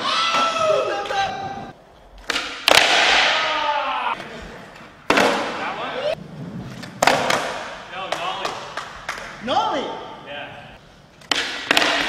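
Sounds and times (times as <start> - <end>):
skateboard wheels rolling: 0.0 - 2.8, 4.2 - 9.5
skateboard clacks: 6.7 - 9.4, 11.2 - 12.0.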